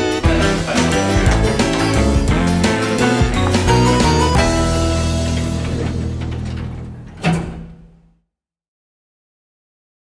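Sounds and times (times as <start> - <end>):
music: 0.0 - 7.9
lift doors clunking shut: 0.3 - 8.0.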